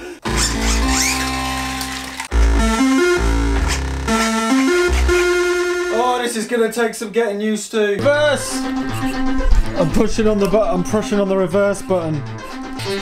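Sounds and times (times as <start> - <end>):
synthesizer music: 0.2 - 6.3
deep bass: 2.3 - 6.1.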